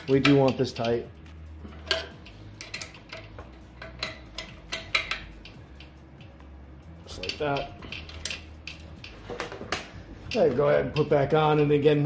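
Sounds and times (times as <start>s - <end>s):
wrench clicking on metal bolts: 0.0s - 1.1s, 1.8s - 6.3s, 7.1s - 9.2s.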